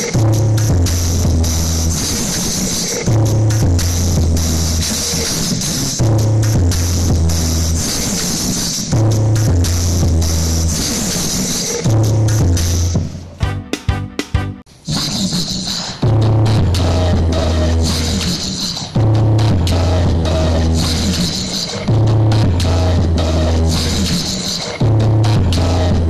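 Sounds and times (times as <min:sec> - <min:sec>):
bass-heavy dance music: 0:00.0 - 0:14.7, 0:16.0 - 0:26.0.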